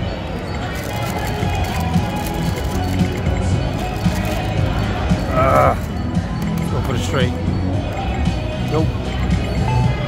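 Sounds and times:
background music: 0.0s - 10.0s
people's voices: 0.0s - 10.0s
video poker machine chirps and tones: 5.2s - 9.0s.

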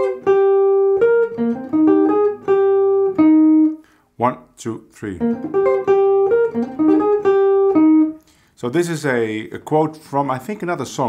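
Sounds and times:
jazz guitar playing: 0.0s - 3.9s, 5.1s - 8.2s.

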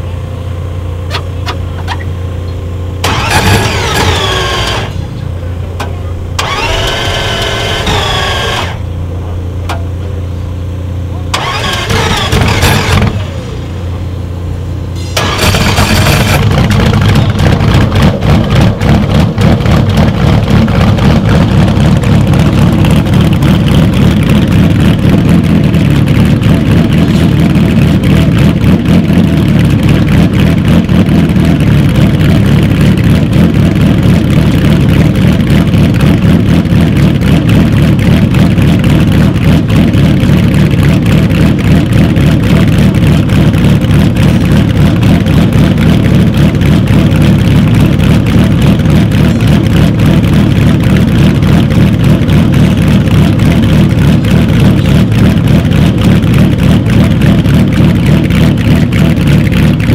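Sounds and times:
engine running roughly: 0.0s - 59.9s
low hum: 0.0s - 59.9s
starter cranking: 3.0s - 5.0s, 6.4s - 8.8s, 11.4s - 13.2s, 15.2s - 17.3s.

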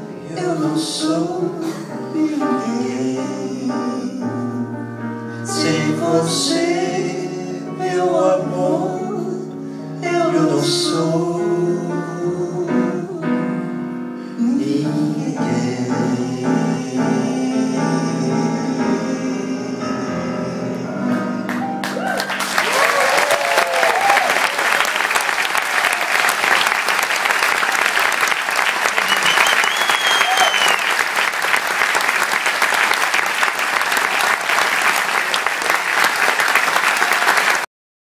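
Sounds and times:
piano chord: 0.0s - 22.6s
voices singing: 14.4s - 21.7s
audience applauding: 21.5s - 37.7s
audience cheering: 21.8s - 37.7s.

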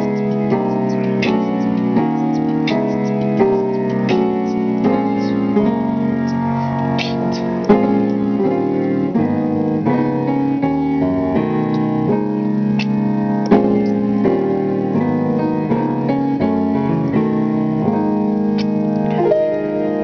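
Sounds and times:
grand piano chords: 0.0s - 20.0s.

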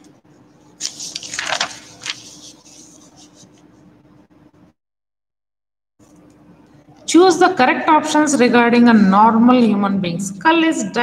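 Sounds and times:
room hiss and hum: 0.0s - 4.8s, 6.0s - 11.0s.

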